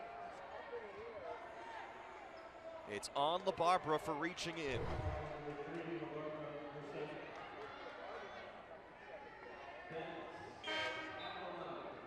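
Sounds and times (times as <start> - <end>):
voices of players and crowd: 0.0 - 12.0.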